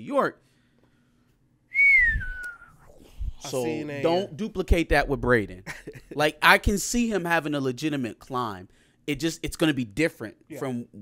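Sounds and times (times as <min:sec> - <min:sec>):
person whistling falling note: 0:01.7 - 0:03.4.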